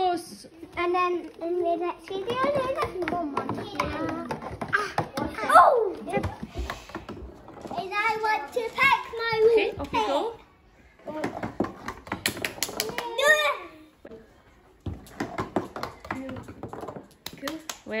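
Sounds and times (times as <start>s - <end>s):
marble rattling down cardboard tubes: 1.6s - 10.2s, 11.1s - 13.3s, 14.8s - 18.0s.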